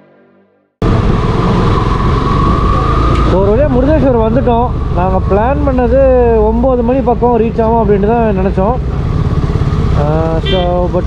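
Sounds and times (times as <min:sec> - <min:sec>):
wind noise on microphone: 0:00.8 - 0:06.8
motorcycle engine at low speed: 0:00.8 - 0:11.0.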